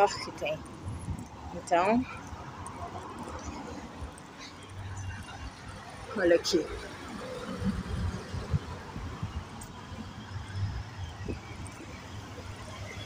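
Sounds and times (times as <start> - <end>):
faint passing traffic: 0.0 - 13.0.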